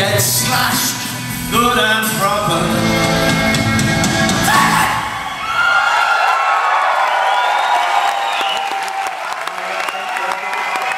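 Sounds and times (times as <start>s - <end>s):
rock band playing: 0.0s - 5.3s
crowd cheering and whooping: 3.8s - 10.9s.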